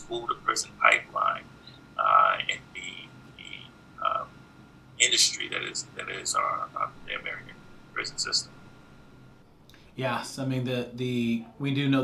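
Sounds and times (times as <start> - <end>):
garbled man's voice on video call: 0.0 - 4.3, 5.0 - 8.5.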